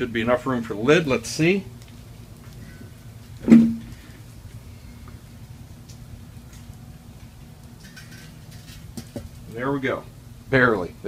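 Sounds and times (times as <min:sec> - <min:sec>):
grill lid knock: 0:03.4 - 0:03.9.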